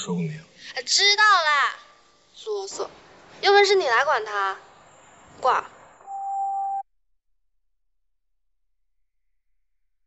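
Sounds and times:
phone call-ended beep: 6.0 - 6.8.

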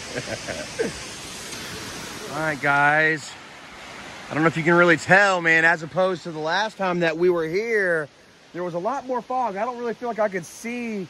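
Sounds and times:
distant waterfall rushing: 0.0 - 11.0.

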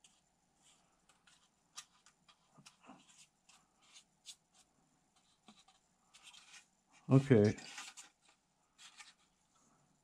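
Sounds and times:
faint brush scratches: 0.0 - 9.4.

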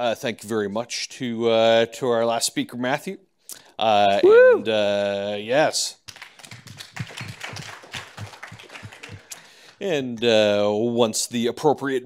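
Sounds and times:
audience applauding: 6.1 - 9.8.

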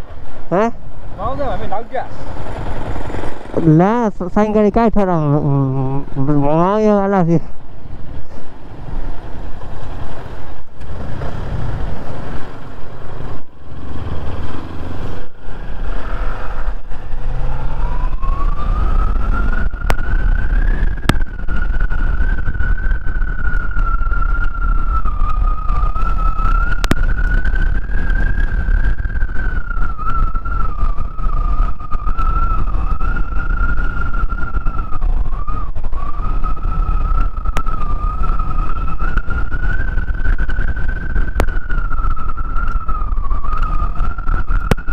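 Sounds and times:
wind noise: 0.0 - 44.9
motorcycle engine: 1.0 - 4.2.

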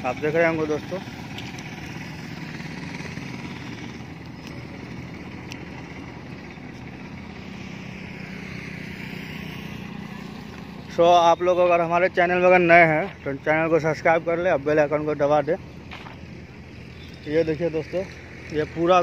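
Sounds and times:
motorbikes and rickshaws passing: 0.0 - 19.0.

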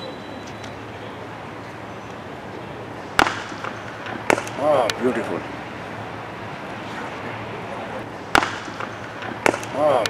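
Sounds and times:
cricket bat striking ball: 3.1 - 5.0, 8.2 - 10.0
man exclaiming: 9.7 - 10.0.

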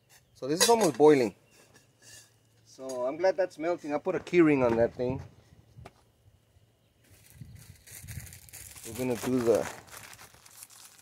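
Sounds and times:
plastic packet crinkling: 7.7 - 11.0.

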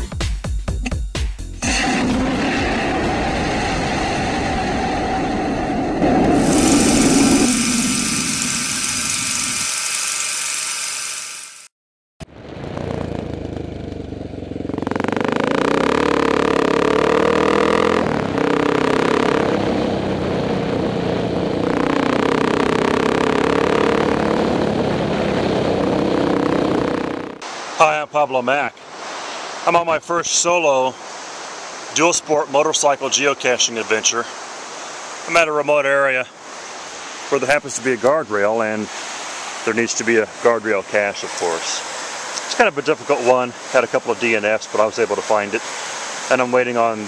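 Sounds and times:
motorcycle engine running: 6.4 - 27.4.

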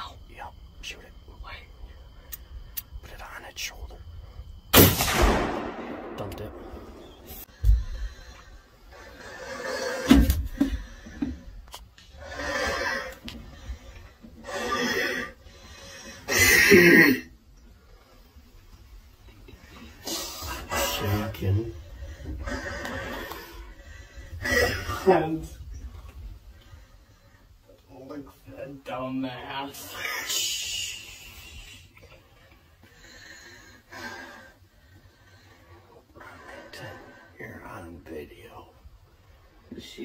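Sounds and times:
rifle shot: 4.7 - 7.3.

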